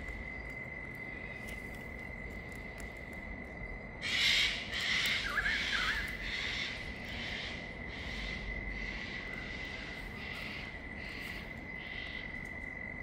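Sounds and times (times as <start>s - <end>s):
high-pitched insect trill: 0.0s - 13.0s.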